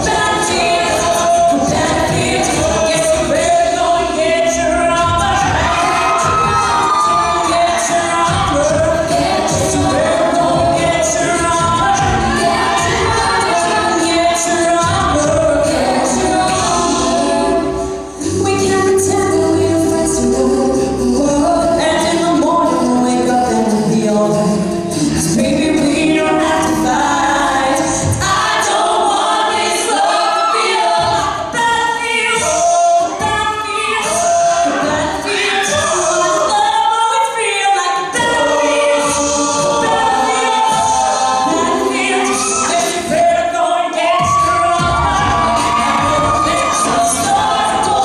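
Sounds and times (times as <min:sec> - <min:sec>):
backing voices singing: 0:00.0 - 0:48.0
lead voice singing: 0:00.0 - 0:48.0.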